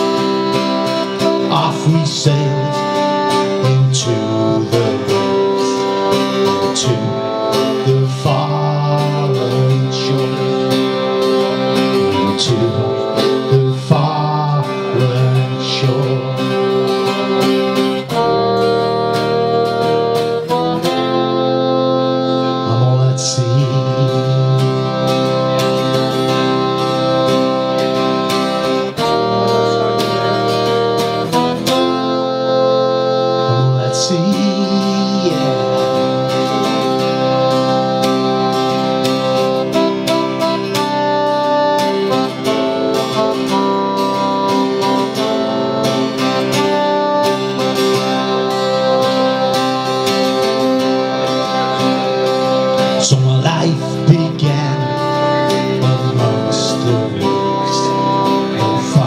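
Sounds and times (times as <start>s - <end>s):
acoustic guitar strummed: 0.0s - 59.0s
electronic keyboard chords: 0.0s - 59.0s.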